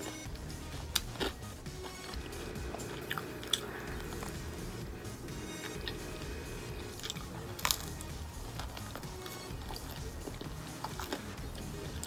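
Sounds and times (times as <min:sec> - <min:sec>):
person chewing food: 0:00.0 - 0:12.0
quiet background music: 0:00.0 - 0:12.0
crunch of food: 0:06.8 - 0:12.0.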